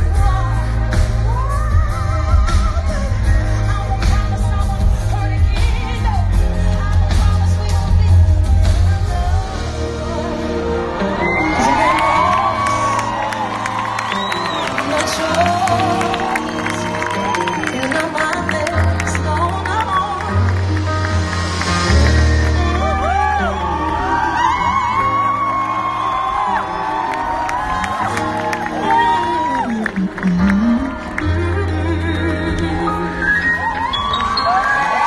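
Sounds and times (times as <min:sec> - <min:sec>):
pop band playing: 0:00.0 - 0:35.0
crowd cheering and screaming: 0:09.5 - 0:35.0.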